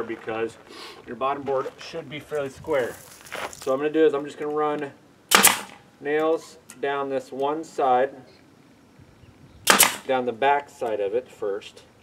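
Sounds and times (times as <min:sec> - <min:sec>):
nail gun shot: 0:05.3 - 0:05.8, 0:09.6 - 0:10.1.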